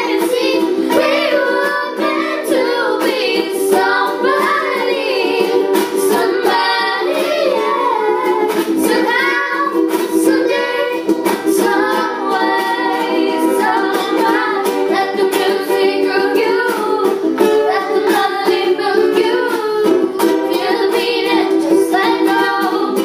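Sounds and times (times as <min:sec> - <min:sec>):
girls singing in unison: 0:00.0 - 0:23.0
ukuleles strummed: 0:00.0 - 0:23.0.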